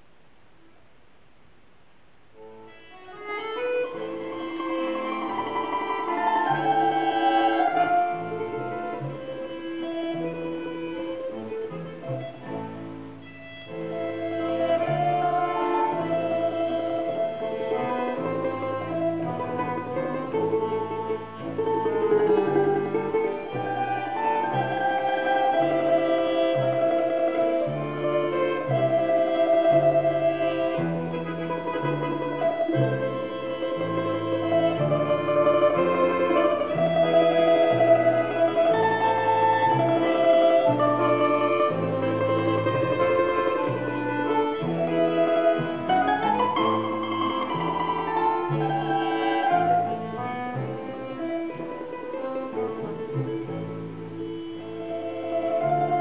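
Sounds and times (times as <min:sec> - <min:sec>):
button accordion chords: 0:02.4 - 0:56.0
domra melody: 0:02.4 - 0:56.0.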